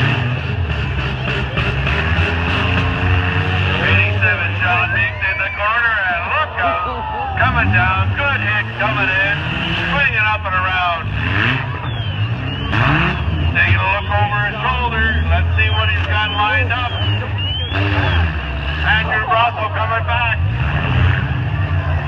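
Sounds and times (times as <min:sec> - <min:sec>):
car engines revving: 0:00.0 - 0:22.0
crowd voices: 0:00.0 - 0:22.0
announcer speaking: 0:03.1 - 0:20.6.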